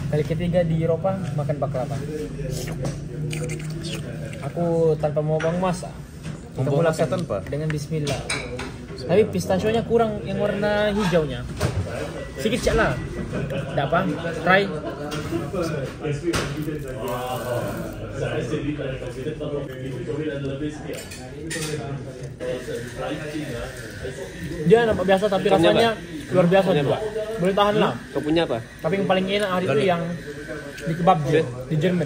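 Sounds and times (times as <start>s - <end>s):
people talking indistinctly: 0.0s - 32.0s.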